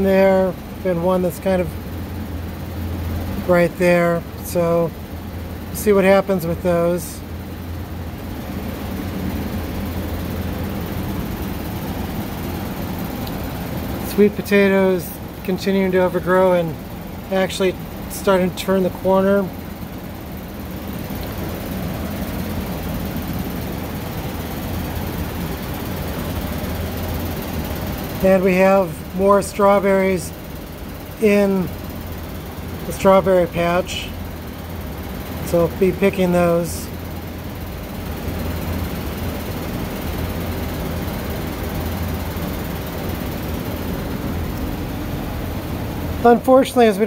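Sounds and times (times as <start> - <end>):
low rumbling drone with hiss: 0.0 - 47.0
ventilation fan humming: 0.0 - 47.0.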